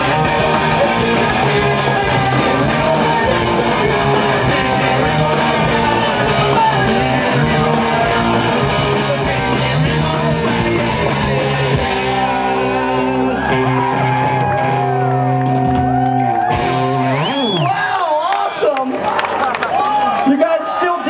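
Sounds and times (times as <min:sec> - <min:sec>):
rock band electric guitar chord: 0:00.0 - 0:17.4
crowd shouting and cheering: 0:00.0 - 0:21.0.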